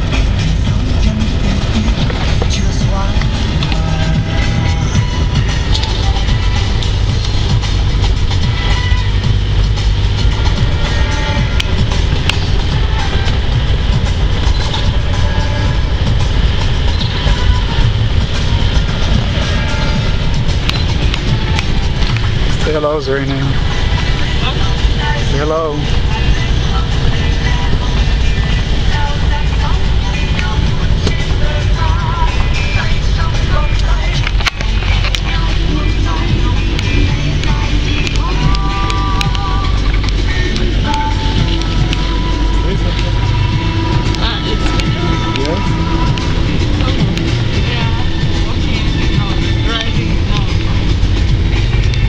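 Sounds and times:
car road and engine rumble: 0.0 - 52.0
faint voices: 10.4 - 52.0.

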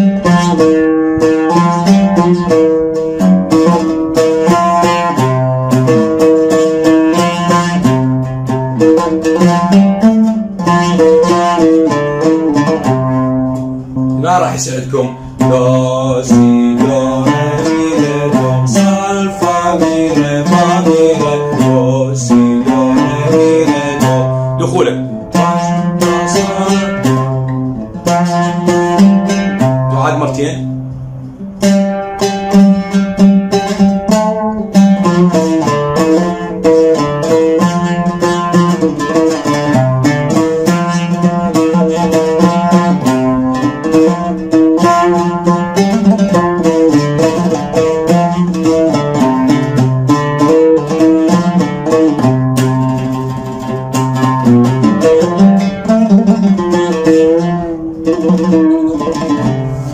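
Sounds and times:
oud melody: 0.0 - 59.9.

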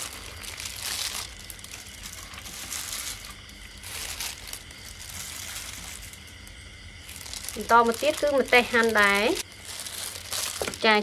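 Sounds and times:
salad rustling in bowl: 0.0 - 11.0.

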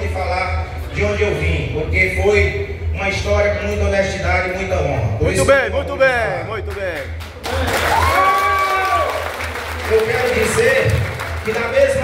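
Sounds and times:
audience applauding: 6.7 - 12.0
long held cheer: 7.5 - 9.5.

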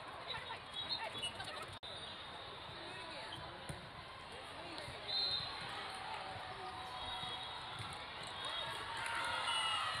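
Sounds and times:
shrill referee's whistle: 0.7 - 1.3, 5.0 - 5.6, 7.0 - 7.6.

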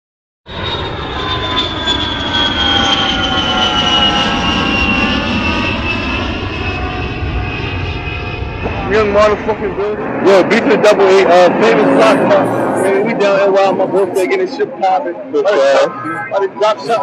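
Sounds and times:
airplane engine rumble and whine: 0.5 - 17.0.

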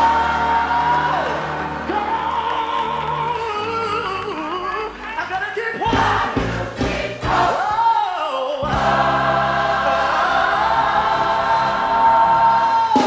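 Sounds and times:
gospel choir singing: 0.0 - 13.0
lead voice singing: 0.0 - 13.0.

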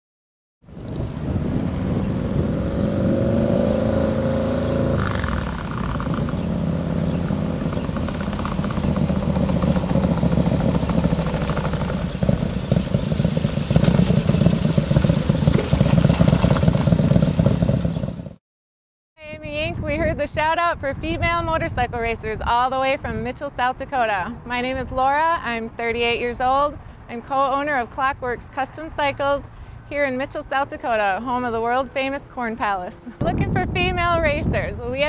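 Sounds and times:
motorcycle engine accelerating: 0.6 - 18.4.

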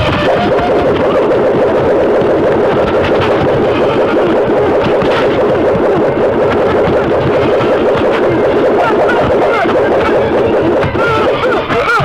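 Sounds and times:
dense rumbling drone: 0.0 - 12.0.

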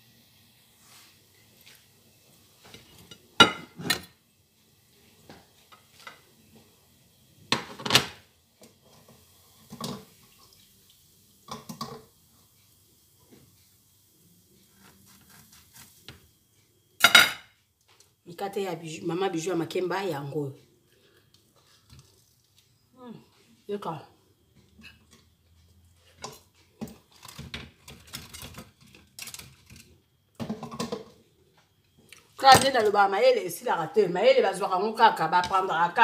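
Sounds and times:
cutlery clinking on plates: 2.7 - 4.1, 17.0 - 17.5.

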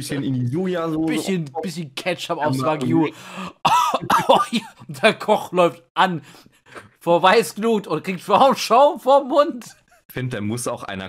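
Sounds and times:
man coughing: 2.5 - 4.9
man's laugh-like exclamation: 2.9 - 4.8.

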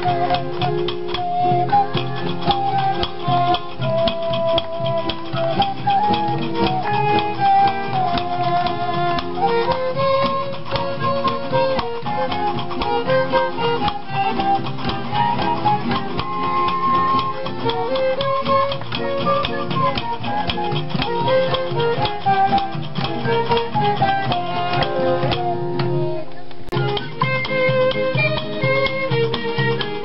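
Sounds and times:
fiddle playing melody: 0.0 - 30.0
strummed guitar rhythm: 0.0 - 30.0.

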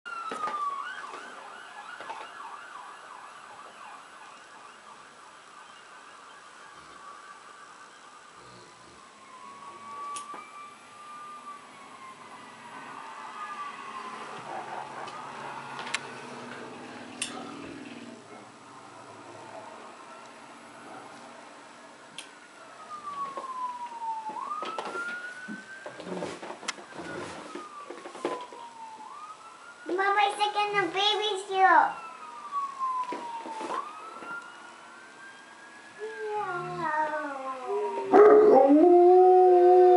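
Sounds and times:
fire truck siren: 0.1 - 39.9
knocks and rustles: 23.0 - 29.2.

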